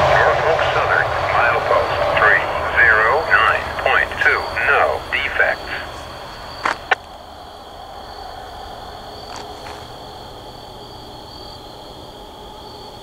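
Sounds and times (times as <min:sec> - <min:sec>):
automated voice over radio: 0:00.0 - 0:06.3
faint radio hiss: 0:00.0 - 0:07.6
high-pitched insect drone: 0:00.0 - 0:13.0.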